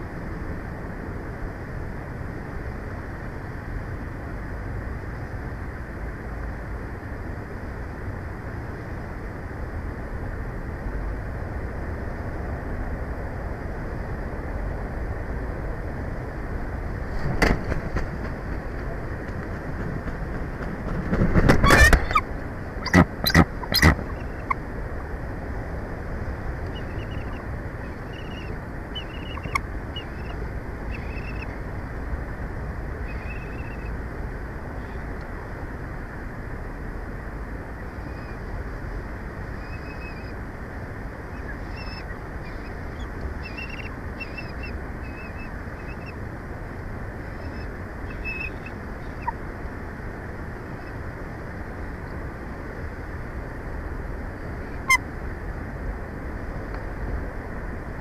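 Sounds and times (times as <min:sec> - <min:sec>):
outdoor rumble and hiss: 0:00.0 - 0:58.0
faint short bird calls: 0:21.6 - 0:24.6, 0:26.7 - 0:31.6, 0:33.0 - 0:33.9, 0:39.5 - 0:40.4, 0:41.3 - 0:46.2, 0:47.2 - 0:49.4.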